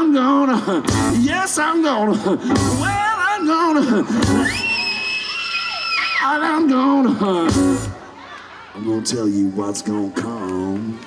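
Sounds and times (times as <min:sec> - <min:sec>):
blues-rock band playing: 0:00.0 - 0:03.4, 0:04.0 - 0:04.8, 0:07.3 - 0:08.0.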